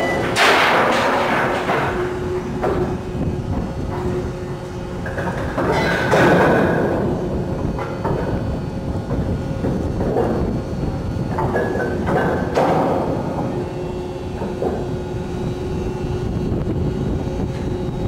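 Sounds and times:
machinery rumble: 0.0s - 18.0s.

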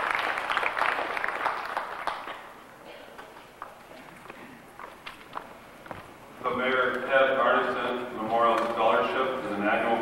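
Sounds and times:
footsteps on stage floor: 3.2s - 7.1s.

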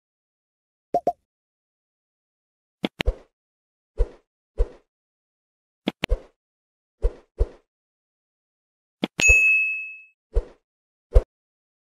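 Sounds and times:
bright bell ding: 9.2s - 10.1s.

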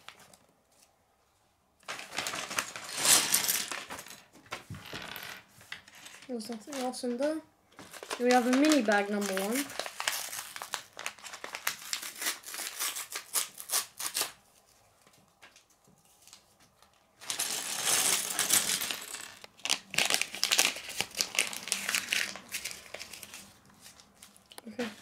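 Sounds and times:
paper bag tearing and crinkling: 1.9s - 4.2s, 7.8s - 14.4s, 17.2s - 24.4s
plastic bricks clattering on wood: 2.8s - 6.3s.

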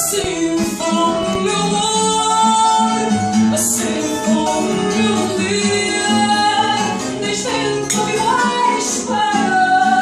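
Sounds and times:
guitar: 0.0s - 10.0s
woman singing with vibrato: 0.0s - 10.0s.

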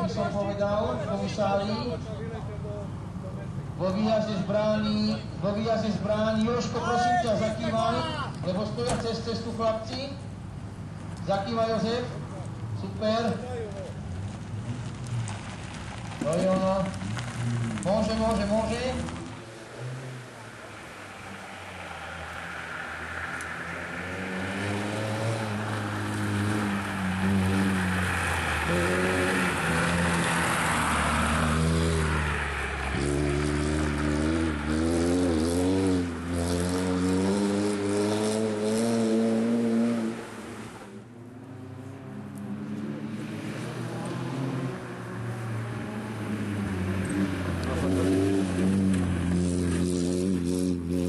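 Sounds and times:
rally car engine revving: 16.8s - 40.8s, 41.4s - 51.0s.

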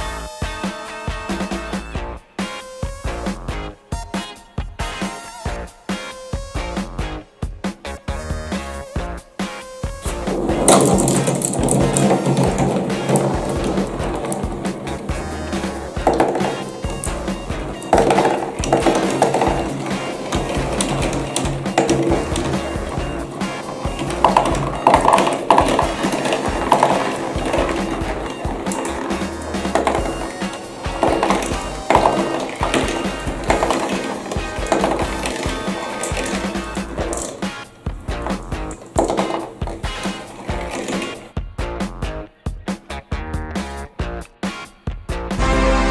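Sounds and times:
background music: 0.0s - 45.9s
marbles rolling on cardboard track: 10.0s - 41.3s.

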